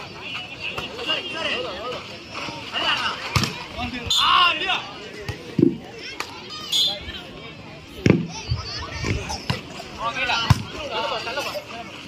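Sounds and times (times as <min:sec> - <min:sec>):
players and spectators shouting: 0:00.0 - 0:11.9
volleyball thumps: 0:03.2 - 0:03.7.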